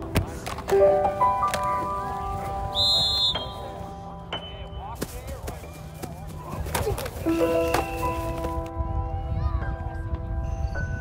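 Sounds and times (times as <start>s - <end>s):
background music: 0.0s - 11.0s
high whistle blast: 2.7s - 3.7s.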